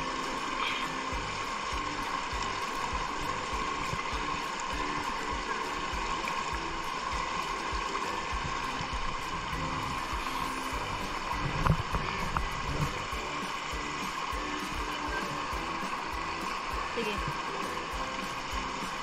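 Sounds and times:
rocky stream flowing: 0.0s - 19.0s
soft instrumental music: 0.0s - 19.0s.

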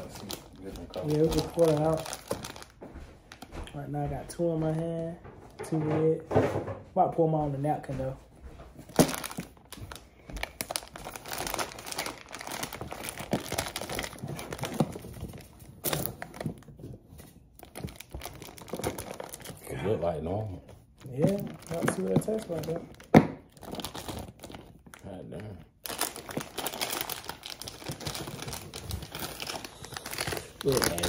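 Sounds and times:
snack box wrapping crinkling: 0.0s - 3.5s, 8.9s - 19.7s, 21.0s - 31.0s.

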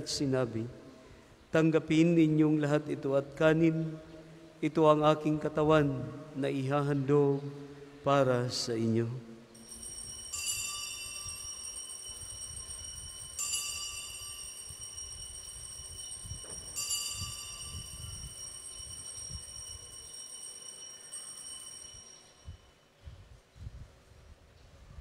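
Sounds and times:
altar bells ringing: 9.6s - 22.8s.

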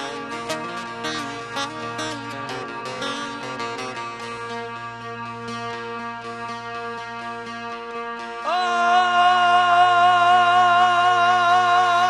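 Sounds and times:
held keyboard accompaniment: 0.0s - 12.0s
long-necked lute picking melody: 0.0s - 12.0s.

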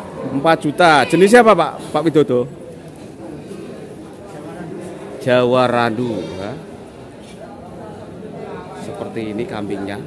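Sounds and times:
man speaking: 0.1s - 2.5s.

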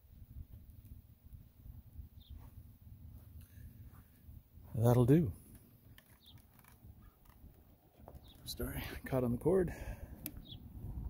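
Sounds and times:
faint soft clicks: 10.2s - 10.4s.

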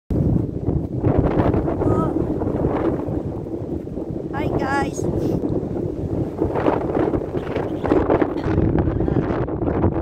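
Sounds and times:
wind buffeting microphone: 0.1s - 10.0s
woman's voice: 1.8s - 2.2s, 4.3s - 5.1s, 7.4s - 9.4s.

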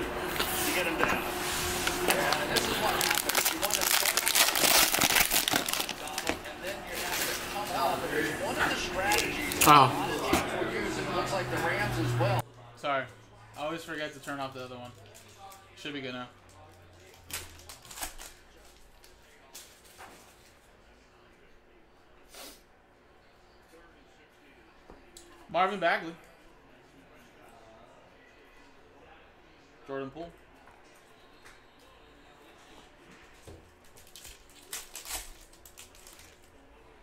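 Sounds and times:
plastic wrapper crinkling: 1.8s - 7.8s, 9.0s - 9.8s, 33.8s - 36.6s.

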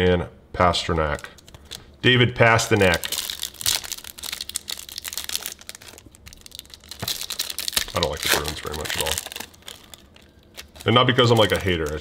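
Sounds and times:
foil wrapper crinkling: 1.2s - 12.0s.

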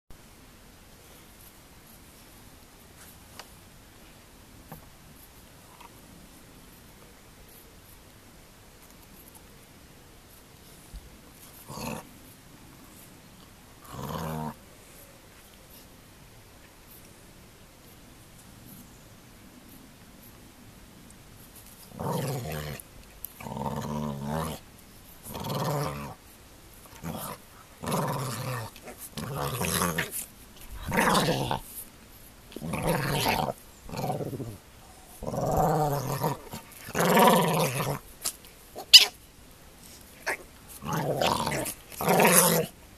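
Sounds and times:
dog growling: 11.6s - 12.1s, 13.8s - 14.6s, 21.9s - 22.8s, 23.4s - 24.6s, 25.2s - 26.2s, 26.8s - 31.7s, 32.5s - 38.1s, 40.2s - 42.7s
dog vocalisation: 38.8s - 39.2s.

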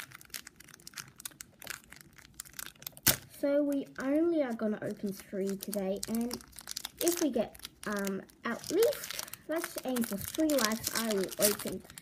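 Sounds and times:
packet wrapper crinkling and tearing: 0.0s - 3.4s, 4.9s - 12.0s.

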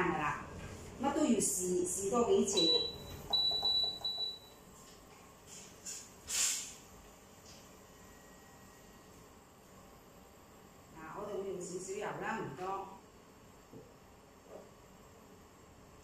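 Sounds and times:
induction hob beeping: 2.4s - 4.6s
brief hiss: 5.5s - 6.8s.

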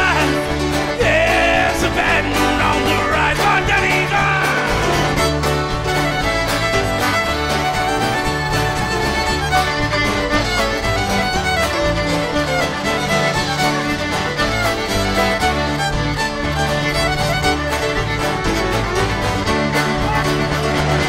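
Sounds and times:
electric bass: 0.0s - 21.0s
fiddle melody: 0.0s - 21.0s
strummed acoustic guitar: 0.0s - 21.0s.

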